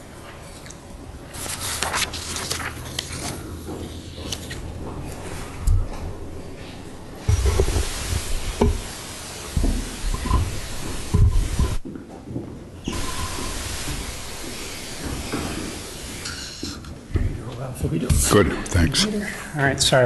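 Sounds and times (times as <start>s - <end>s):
papers shuffling: 1.3s - 8.4s
steady hiss: 5.2s - 12.0s, 12.8s - 17.6s.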